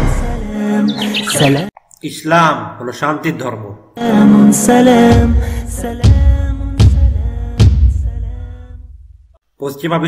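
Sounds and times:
background music: 0:00.0 - 0:01.7, 0:04.0 - 0:09.2
bird chirps: 0:00.8 - 0:01.7.

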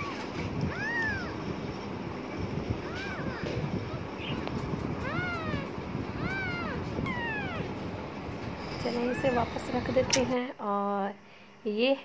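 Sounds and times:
kitten mewing: 0:00.0 - 0:01.4, 0:02.8 - 0:07.8.

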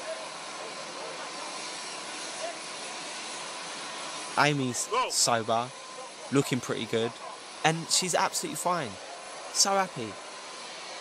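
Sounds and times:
faint indistinct voices: 0:00.0 - 0:03.1, 0:05.6 - 0:07.6
jet engines rushing: 0:00.0 - 0:11.0.

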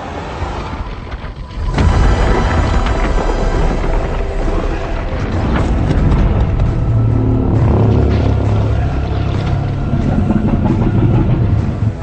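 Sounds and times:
low musical score: 0:00.0 - 0:12.0
deep underwater vessel rumble: 0:00.7 - 0:12.0.

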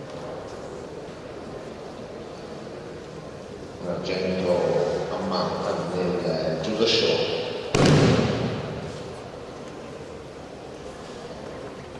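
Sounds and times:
person talking in a hall: 0:03.6 - 0:09.5
loud echoing thud: 0:07.3 - 0:09.2.

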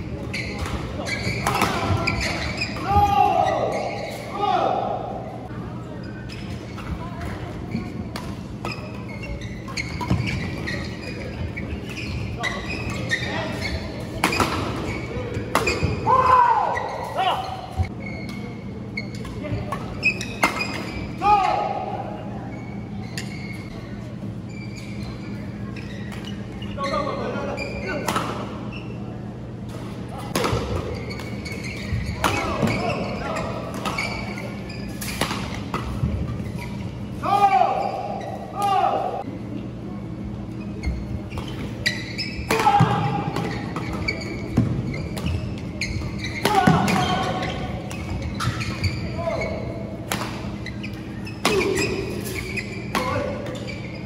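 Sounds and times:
sneakers squeaking on court: 0:00.0 - 0:04.3, 0:05.8 - 0:16.1, 0:16.7 - 0:21.2, 0:22.4 - 0:38.6, 0:39.7 - 0:54.0.

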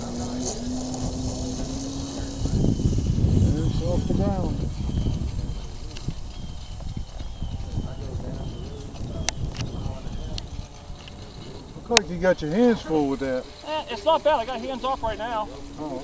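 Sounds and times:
model airplane motor whine: 0:00.0 - 0:16.0
wind buffeting microphone: 0:00.0 - 0:16.0.

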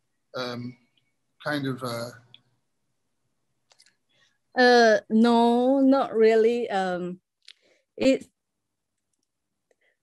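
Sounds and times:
man speaking: 0:00.4 - 0:02.3.

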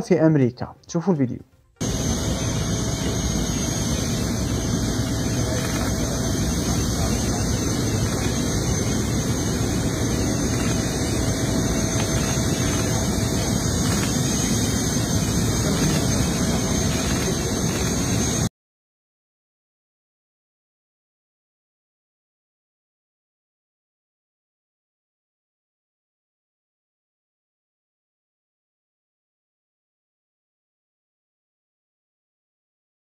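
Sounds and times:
jet turbine roaring: 0:01.8 - 0:18.5.

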